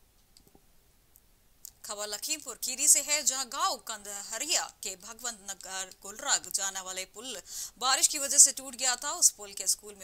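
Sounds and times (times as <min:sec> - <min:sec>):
woman speaking: 0:01.7 - 0:10.0.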